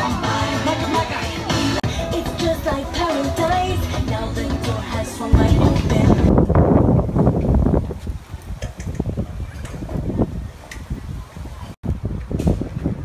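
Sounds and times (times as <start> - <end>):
wind buffeting microphone: 5.3 - 13.0.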